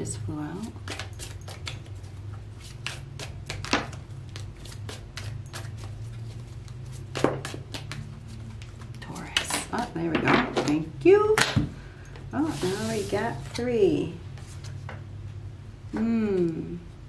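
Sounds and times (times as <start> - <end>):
low steady hum: 0.0 - 17.0
cards being shuffled: 0.6 - 9.6.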